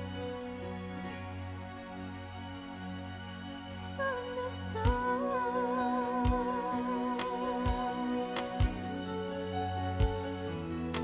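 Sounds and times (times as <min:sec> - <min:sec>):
pop ballad backing music: 0:00.0 - 0:02.4, 0:03.1 - 0:11.0
woman singing with vibrato: 0:04.0 - 0:08.4.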